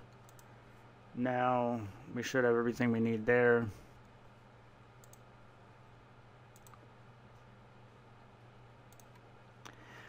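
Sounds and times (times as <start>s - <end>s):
faint steady hum: 0.0s - 10.0s
computer mouse clicks: 0.1s - 0.5s, 5.0s - 5.3s, 6.5s - 7.5s, 8.9s - 9.3s.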